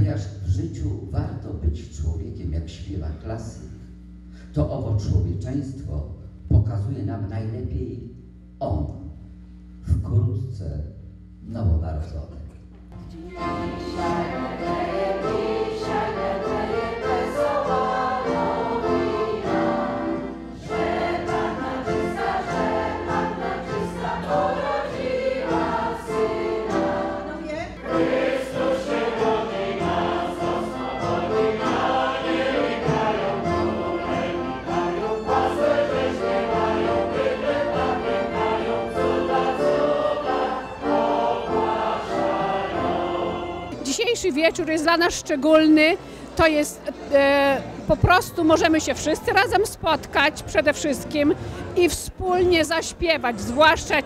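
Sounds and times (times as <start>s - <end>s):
violin: 13.0s - 43.9s
accordion: 13.0s - 54.0s
choir and audience singing: 13.2s - 43.8s.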